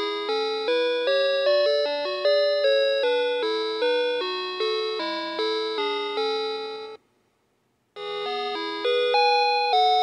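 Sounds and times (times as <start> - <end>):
toy playing electronic lullaby: 0.0 - 7.0, 8.0 - 10.0.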